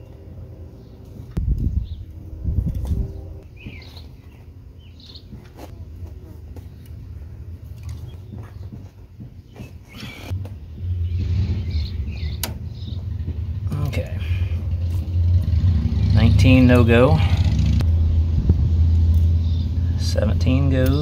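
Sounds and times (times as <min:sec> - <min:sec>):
low rumble: 0:00.0 - 0:03.7, 0:10.3 - 0:20.8.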